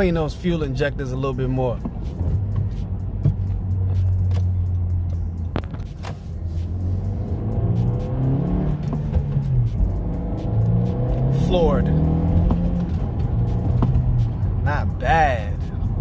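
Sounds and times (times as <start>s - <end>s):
car engine revving: 1.7s - 16.0s.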